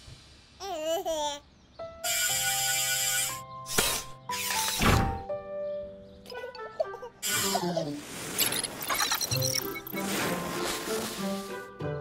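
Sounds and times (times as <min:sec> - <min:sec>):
baby's voice: 0:00.6 - 0:01.4.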